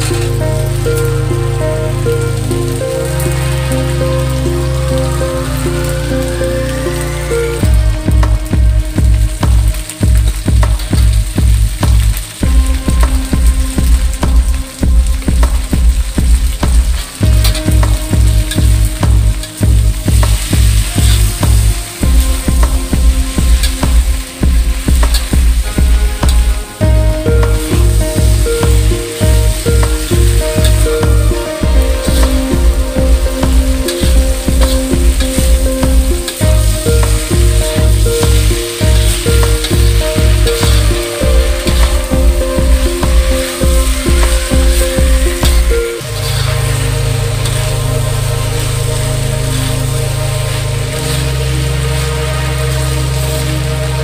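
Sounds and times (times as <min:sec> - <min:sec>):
background music with steady beat: 0:00.0 - 0:54.0
noodles sizzling in a wok: 0:00.0 - 0:54.0
metal spatula in wok: 0:15.5 - 0:53.8.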